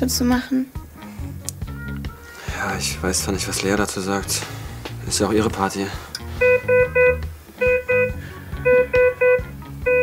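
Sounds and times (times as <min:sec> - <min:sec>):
patient monitor alarm beeping: 0:06.4 - 0:10.0.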